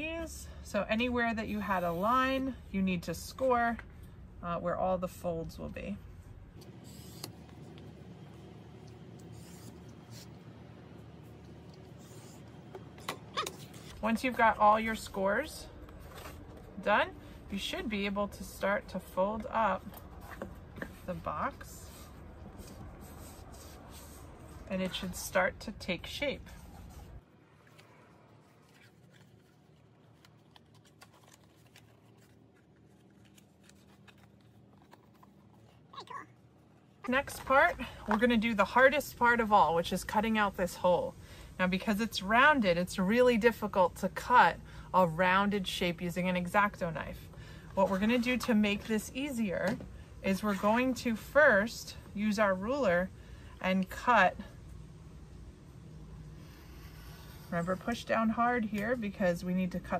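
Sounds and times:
cardstock folding crackles: 0:26.6 - 0:36.0.

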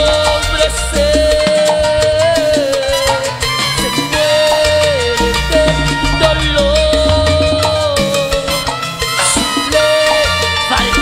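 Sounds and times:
latin band music: 0:00.0 - 0:11.0
sliding melody note: 0:03.1 - 0:09.0.

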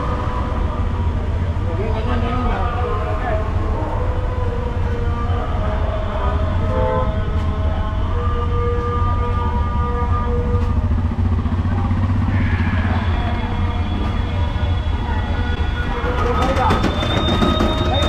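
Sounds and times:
vehicle engines rumbling: 0:00.0 - 0:18.0
held horn tones: 0:06.0 - 0:18.0.

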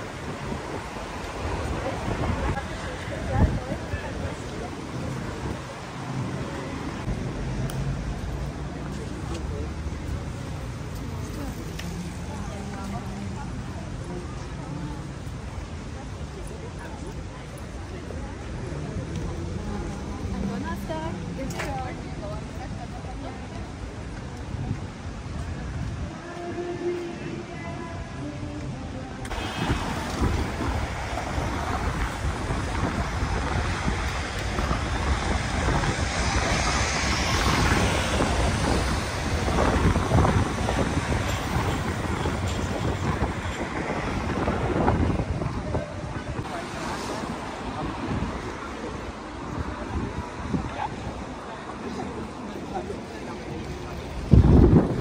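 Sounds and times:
wind buffeting microphone: 0:00.0 - 0:06.2, 0:29.3 - 0:51.4, 0:52.1 - 0:55.0
tram passing: 0:00.0 - 0:28.2, 0:29.2 - 0:55.0
faint voices of passers-by: 0:00.0 - 0:55.0
road traffic: 0:00.0 - 0:55.0.

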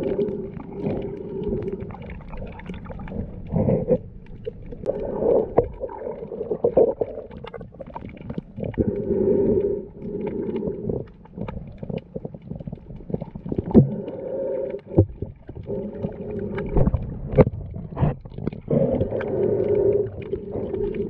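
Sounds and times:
underwater knocks and clicks: 0:00.0 - 0:21.0
underwater rumble of moving water: 0:00.0 - 0:21.0.

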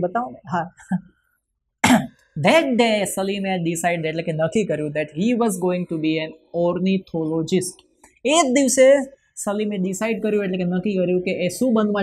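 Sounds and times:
man coughing: 0:01.8 - 0:02.2.

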